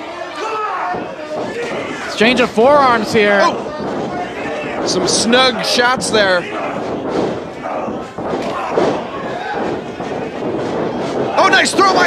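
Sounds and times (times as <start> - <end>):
crowd voices in a hall: 0.0 - 12.0.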